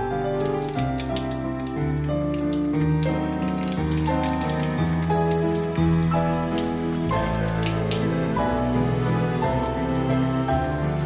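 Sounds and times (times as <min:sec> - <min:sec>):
background music: 0:00.0 - 0:11.0
oil popping: 0:00.0 - 0:11.0
seeds sizzling in hot oil: 0:00.0 - 0:11.0.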